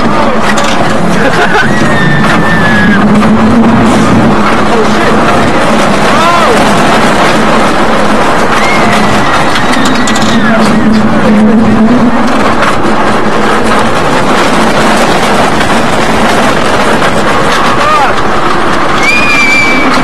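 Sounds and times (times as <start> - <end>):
roller coaster on track: 0.0 - 20.0
riders yelling and screaming: 1.2 - 3.5, 5.8 - 11.4, 17.5 - 20.0.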